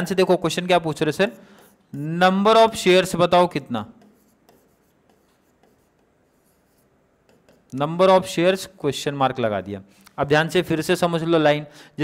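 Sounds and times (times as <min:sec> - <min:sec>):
stylus scratching on touchscreen: 0:03.9 - 0:07.8.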